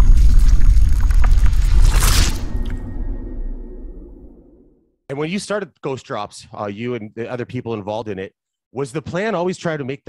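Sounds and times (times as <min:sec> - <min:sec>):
scattered crackles: 0:00.0 - 0:03.1
deep rumble: 0:00.0 - 0:04.8
whoosh: 0:00.0 - 0:04.8.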